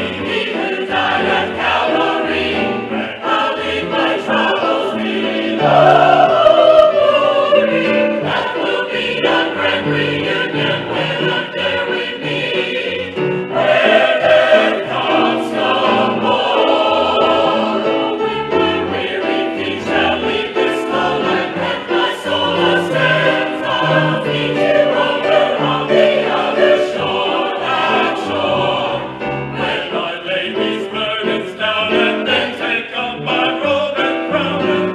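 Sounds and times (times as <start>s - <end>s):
mixed choir singing: 0.0s - 34.9s
piano accompaniment: 0.0s - 34.9s.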